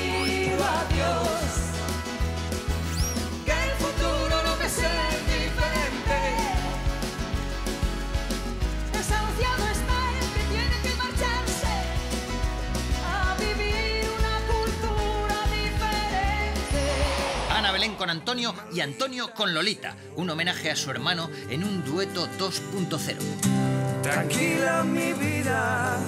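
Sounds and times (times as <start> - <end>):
woman and man singing duet: 0.0 - 1.8, 3.4 - 6.8, 13.0 - 17.3, 24.0 - 26.0
live band accompaniment: 0.0 - 18.5
bass line: 0.0 - 18.6.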